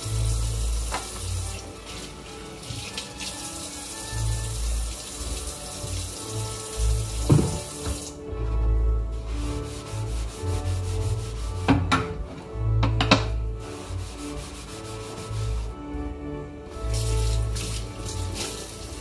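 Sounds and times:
background music: 0.0s - 19.0s
tap running into sink: 0.8s - 3.5s, 7.0s - 8.2s
knocks of wood and dishware: 7.2s - 8.0s, 11.7s - 12.2s, 12.8s - 13.4s
scrubbing wooden cutting board: 9.1s - 11.7s, 13.6s - 15.8s.

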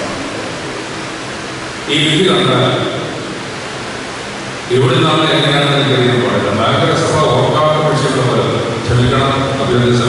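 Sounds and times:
steady hiss: 0.0s - 10.0s
man speaking over public address: 1.8s - 3.3s, 4.7s - 10.0s.

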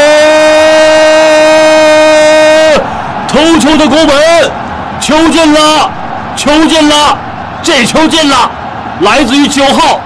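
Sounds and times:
male commentator shouting: 0.0s - 10.0s.

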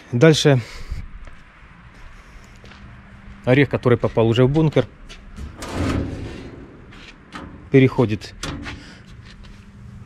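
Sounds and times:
hand rubbing sheet metal: 5.2s - 7.7s.

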